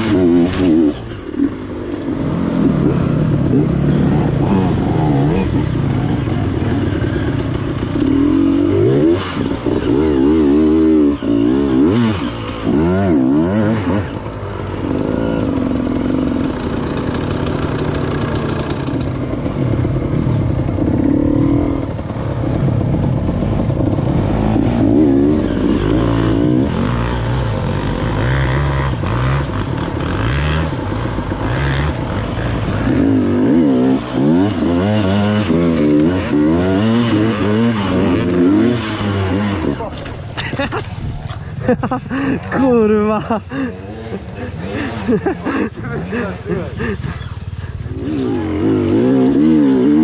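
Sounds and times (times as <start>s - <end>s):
dirt bike engines revving: 0.0s - 50.0s.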